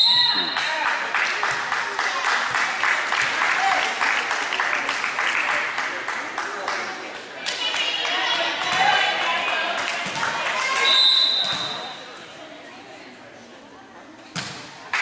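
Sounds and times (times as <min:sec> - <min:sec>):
referee's whistle blast: 0:00.0 - 0:00.6, 0:10.8 - 0:11.8
spectators chattering: 0:00.0 - 0:15.0
volleyball being hit: 0:14.3 - 0:14.7.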